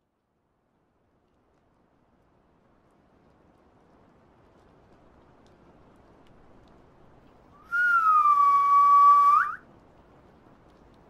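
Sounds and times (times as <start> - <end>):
whistled note: 7.6 - 9.6.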